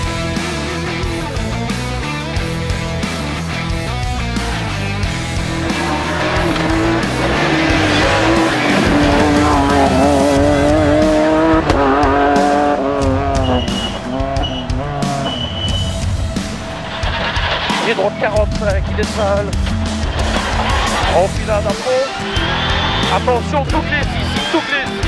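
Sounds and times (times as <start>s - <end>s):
music: 0.0s - 25.0s
car engine revving hard: 5.1s - 17.0s.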